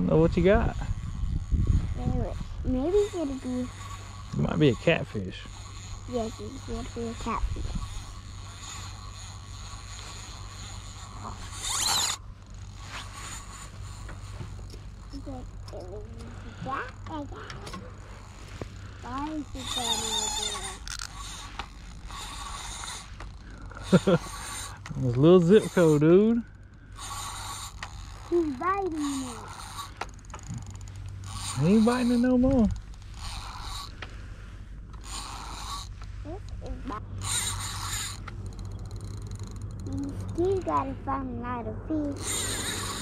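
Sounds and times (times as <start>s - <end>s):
fishing reel gears whirring: 0.0s - 41.1s, 41.9s - 43.0s
steady low rumble: 35.9s - 43.0s.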